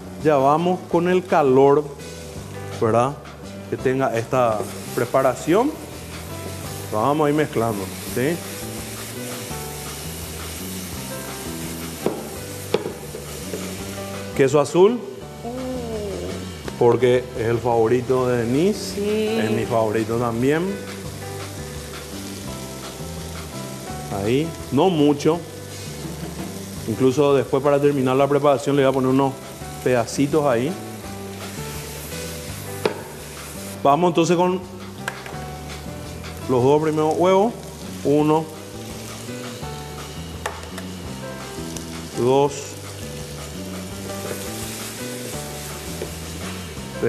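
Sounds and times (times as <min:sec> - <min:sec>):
background music: 0:00.0 - 0:47.0
food sizzling in a pan: 0:00.0 - 0:47.0.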